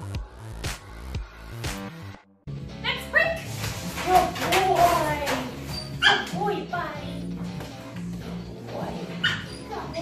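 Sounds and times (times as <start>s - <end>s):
background music: 0.0s - 10.0s
dog yelping: 5.7s - 6.4s, 9.2s - 9.8s.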